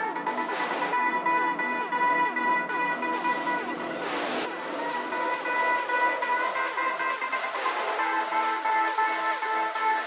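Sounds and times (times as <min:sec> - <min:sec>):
swooshing noise sweeps: 0:02.9 - 0:08.5.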